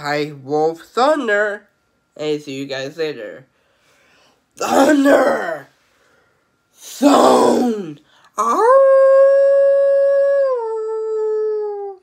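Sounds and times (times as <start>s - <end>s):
man imitating wolf howl: 6.9s - 12.0s.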